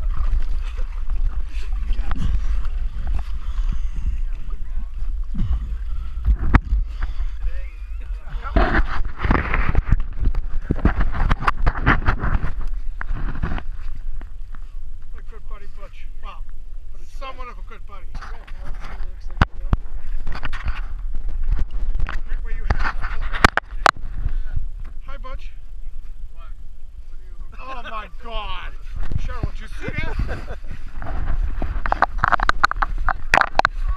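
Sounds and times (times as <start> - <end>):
low rumble: 0.0 - 33.9
people talking: 7.1 - 9.0, 17.0 - 20.3, 22.1 - 30.6.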